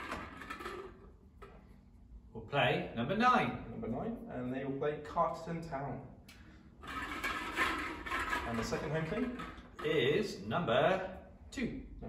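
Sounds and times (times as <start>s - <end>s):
plastic balls rattling in glass bowl: 6.8s - 9.8s.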